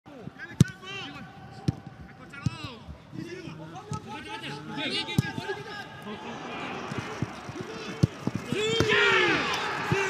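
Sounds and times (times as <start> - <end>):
players shouting: 4.1 - 10.0.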